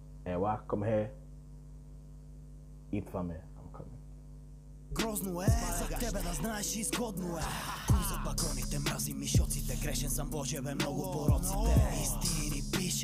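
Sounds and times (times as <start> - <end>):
rapping over a beat: 4.9 - 13.0
deep bass hits dropping in pitch: 11.3 - 12.7.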